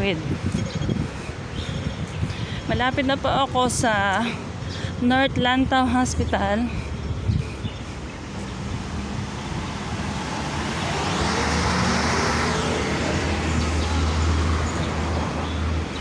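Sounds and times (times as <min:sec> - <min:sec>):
vehicle passing: 0:06.0 - 0:16.0.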